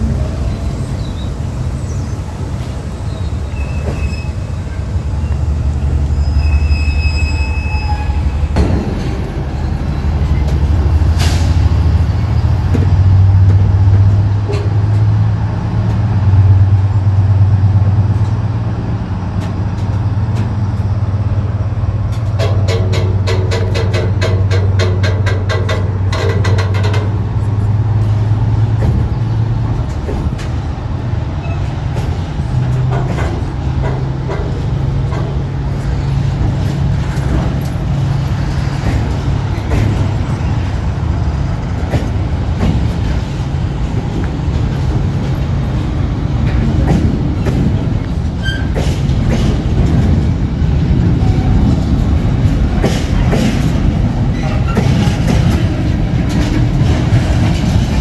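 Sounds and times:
train wheels rumbling on rail: 0:00.0 - 0:58.0
high wheel squeals: 0:00.4 - 0:08.6, 0:48.4 - 0:49.1
fast clicking of train wheels: 0:21.9 - 0:58.0.

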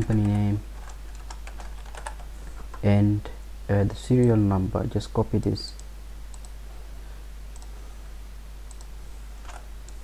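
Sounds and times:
low electrical hum and hiss: 0:00.0 - 0:10.0
faint computer mouse clicks: 0:05.4 - 0:06.6, 0:08.7 - 0:08.9.

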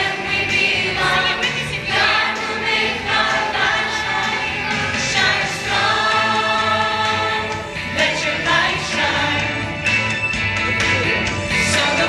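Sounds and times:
children singing together: 0:00.0 - 0:09.6
musical accompaniment with low bass: 0:00.0 - 0:12.0.

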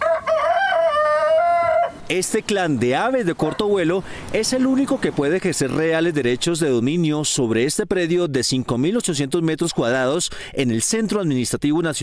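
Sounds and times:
rooster crowing: 0:00.0 - 0:02.1.

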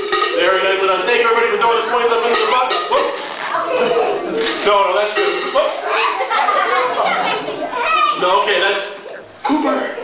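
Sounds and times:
children chattering excitedly: 0:00.5 - 0:10.0.

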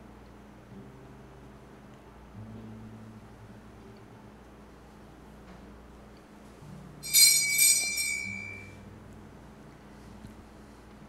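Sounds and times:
small altar bell ringing: 0:07.0 - 0:08.8.

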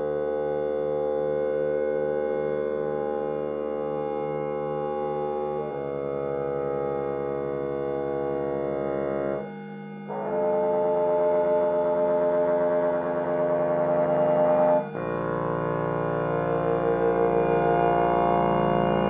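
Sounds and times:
sustained synthesizer chords: 0:00.0 - 0:19.0.

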